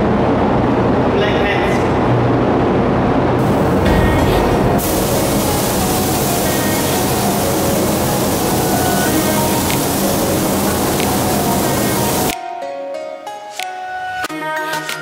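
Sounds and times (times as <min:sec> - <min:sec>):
paint spray gun hissing: 0:03.4 - 0:12.4
background music: 0:03.4 - 0:15.0.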